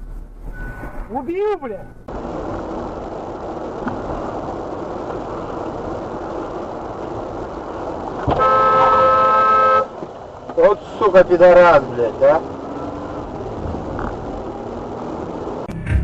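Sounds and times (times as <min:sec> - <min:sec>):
road and engine noise: 0:00.0 - 0:16.0
car horn: 0:08.2 - 0:10.1.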